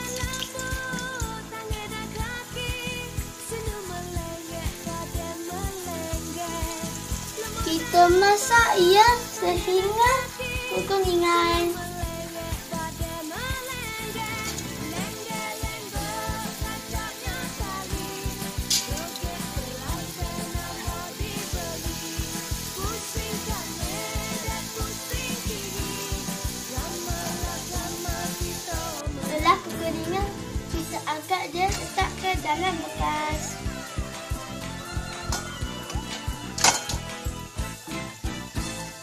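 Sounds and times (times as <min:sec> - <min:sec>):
background music with steady beat: 0:00.0 - 0:39.0
dumplings sizzling in hot oil: 0:00.0 - 0:39.0.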